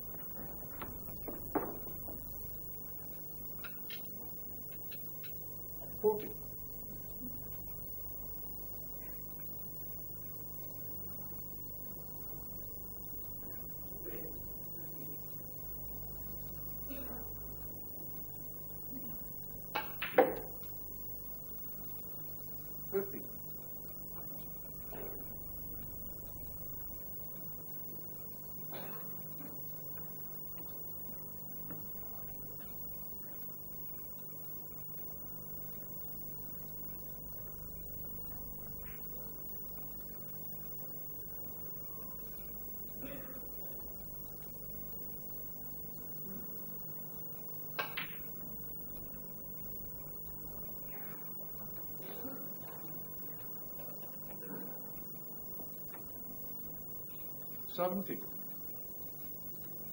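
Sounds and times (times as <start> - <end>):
snooker balls clicking: 0.1 - 5.4, 19.7 - 20.8
cue tip striking ball: 0.9 - 2.3, 19.8 - 20.5.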